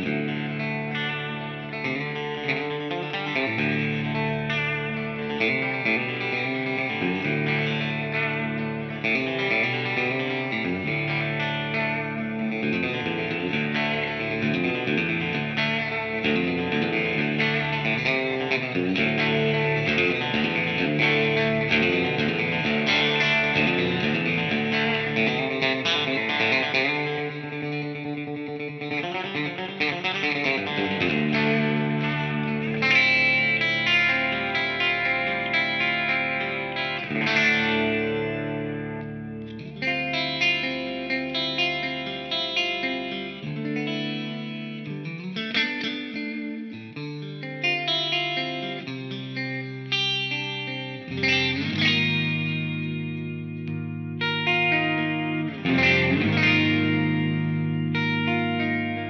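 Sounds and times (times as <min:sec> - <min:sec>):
electric guitar playing: 0:00.0 - 0:59.0.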